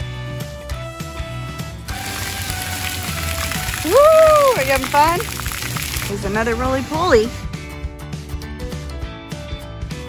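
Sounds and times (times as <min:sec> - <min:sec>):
faint background music: 0:00.0 - 0:10.0
fountain jets spraying water: 0:01.9 - 0:07.3
person calling woo: 0:03.0 - 0:05.3.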